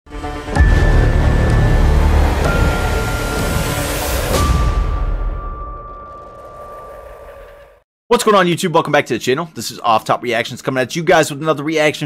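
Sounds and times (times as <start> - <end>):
sudden hit: 0.5 - 7.8
high ringing tone: 0.6 - 7.8.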